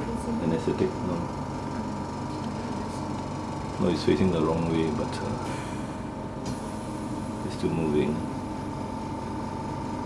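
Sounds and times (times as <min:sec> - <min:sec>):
oxygen concentrator humming and whining: 0:00.0 - 0:10.0.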